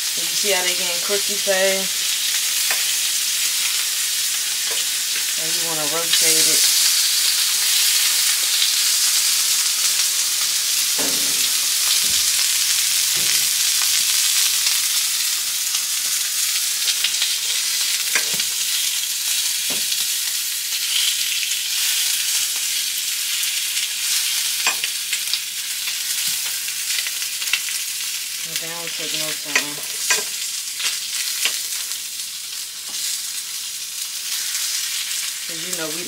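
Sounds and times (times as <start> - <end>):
sausage patties sizzling in pan: 0.0 - 36.0.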